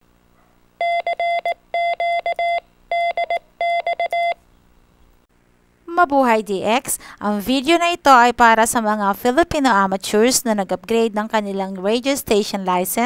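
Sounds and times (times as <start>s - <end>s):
morse code tone beeping: 0.8s - 4.4s.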